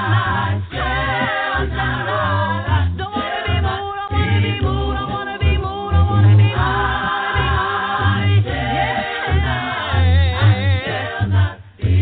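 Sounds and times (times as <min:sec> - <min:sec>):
deep bass voice: 0:00.0 - 0:12.0
vocal group singing harmony: 0:00.0 - 0:12.0.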